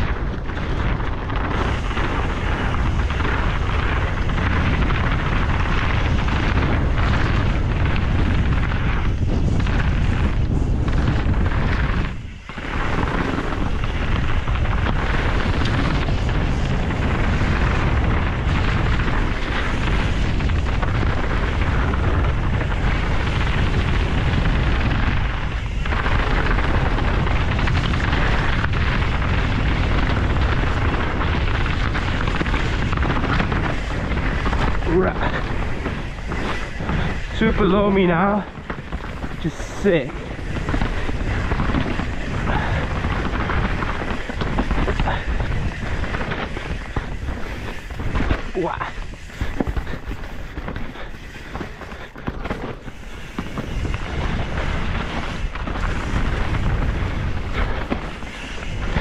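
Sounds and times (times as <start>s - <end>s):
bike rattling over ground: 0.0s - 59.0s
bike tyres rolling: 0.0s - 59.0s
wind rushing over microphone: 0.0s - 59.0s.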